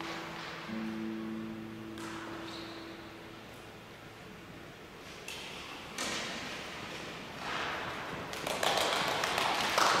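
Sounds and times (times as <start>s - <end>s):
audience clapping: 8.2s - 10.0s.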